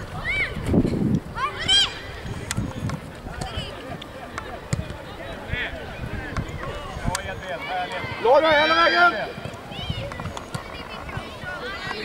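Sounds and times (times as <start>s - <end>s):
players calling and shouting: 0.0s - 12.0s.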